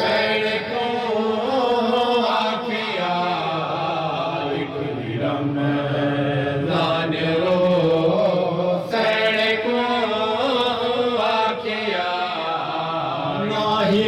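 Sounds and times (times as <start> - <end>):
man chanting a lament: 0.0 - 14.0.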